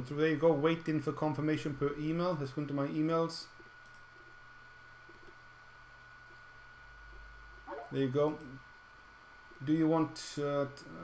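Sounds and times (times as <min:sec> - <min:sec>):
low hum: 0:00.0 - 0:09.9
faint high-pitched whine: 0:00.0 - 0:11.0.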